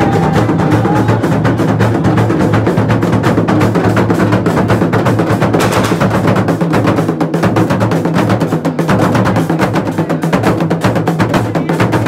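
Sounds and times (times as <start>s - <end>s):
drums beaten with sticks: 0.0s - 12.0s.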